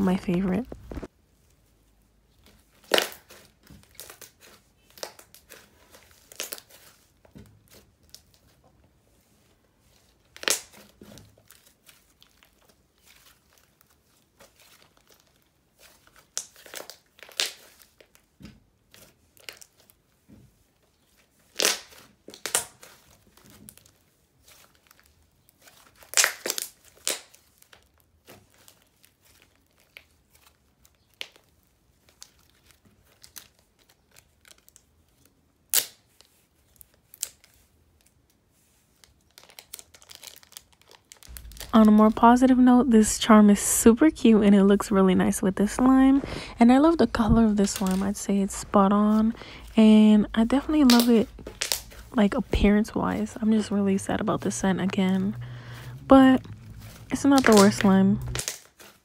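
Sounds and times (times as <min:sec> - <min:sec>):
sticky crackles and pops: 0:02.4 - 0:08.4, 0:10.2 - 0:20.0, 0:21.0 - 0:37.6, 0:39.0 - 0:42.5, 0:45.8 - 0:59.0
hands squishing slime: 0:41.3 - 0:42.4, 0:45.6 - 0:59.0.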